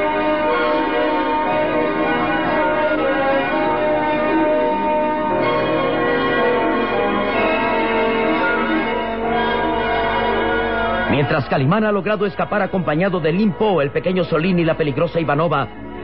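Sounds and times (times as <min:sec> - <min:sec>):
many bells pealing: 0:00.0 - 0:16.0.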